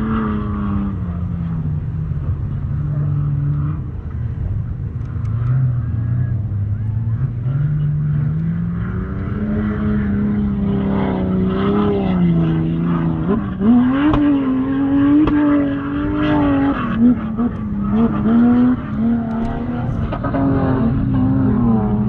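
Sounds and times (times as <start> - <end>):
engine revving: 0.0 - 22.0.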